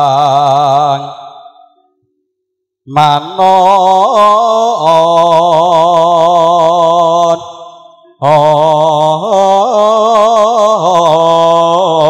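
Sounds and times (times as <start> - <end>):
man singing long note: 0.0 - 1.4, 2.9 - 7.6, 8.2 - 12.0.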